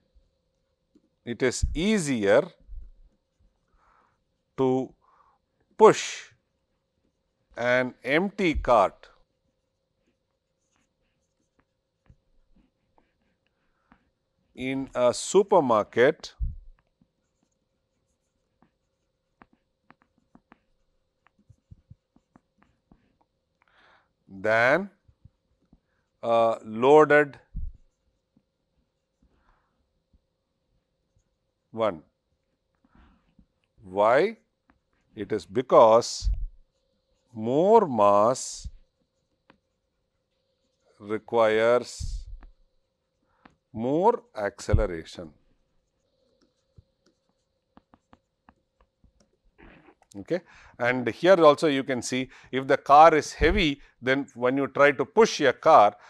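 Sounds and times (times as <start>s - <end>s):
faint steady hum: 0.0s - 56.0s
stylus ticking on tablet: 46.2s - 49.4s.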